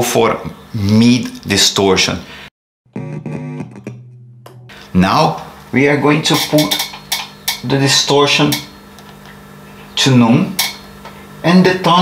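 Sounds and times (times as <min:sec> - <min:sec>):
electric guitar ringing: 0:02.9 - 0:07.5.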